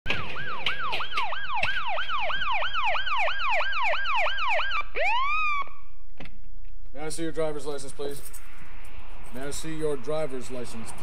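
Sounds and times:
police siren: 0.1 - 6.0.

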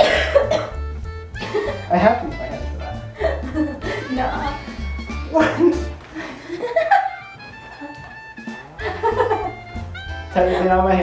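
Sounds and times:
person's cough-like vocal burst: 0.0 - 0.8
music with repeating bass beat: 0.0 - 6.0, 8.2 - 11.0.

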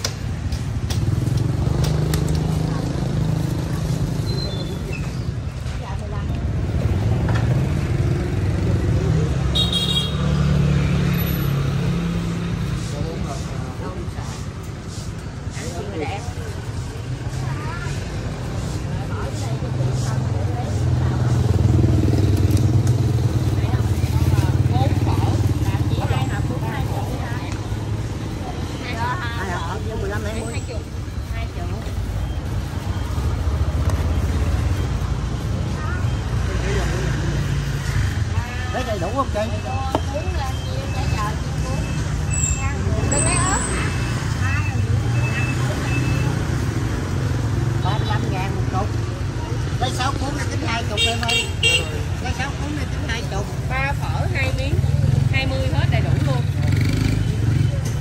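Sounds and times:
motorbike engines rumbling: 0.0 - 58.0
people talking: 1.8 - 9.6, 12.7 - 58.0.

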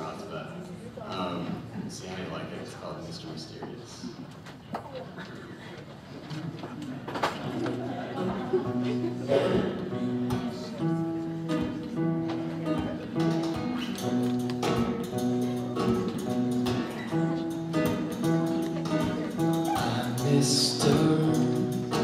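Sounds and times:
acoustic guitar playing: 7.4 - 22.0.

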